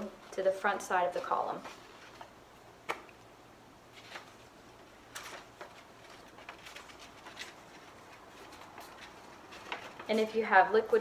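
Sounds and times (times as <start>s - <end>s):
card rustling and crinkling: 0.2s - 3.2s, 3.8s - 10.5s.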